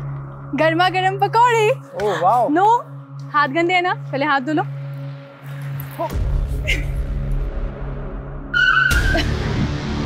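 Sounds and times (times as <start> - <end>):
dramatic background music: 0.0 - 10.0.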